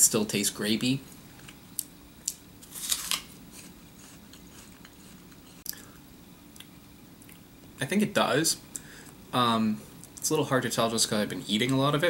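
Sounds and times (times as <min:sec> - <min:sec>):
apple crunch: 0:02.2 - 0:05.8.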